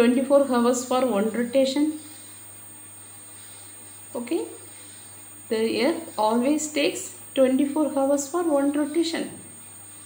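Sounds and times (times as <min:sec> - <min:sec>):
faint background hiss: 0:00.0 - 0:10.0
thin high-pitched whine: 0:00.0 - 0:10.0.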